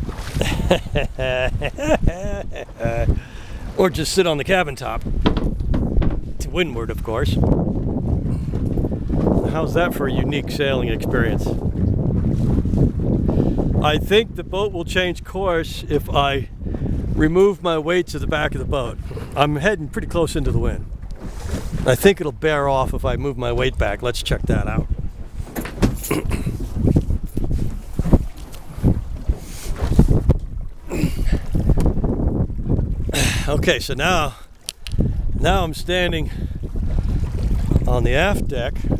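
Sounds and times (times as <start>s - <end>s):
choppy water sloshing: 0.0s - 15.4s, 16.3s - 38.9s
wind buffeting microphone: 0.0s - 38.9s
man's voice: 33.2s - 34.4s, 35.4s - 36.3s, 37.9s - 38.7s.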